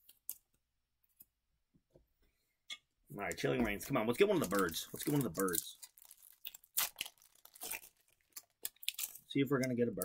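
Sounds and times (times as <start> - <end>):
foil wrapper tearing and crinkling: 4.2 - 10.0.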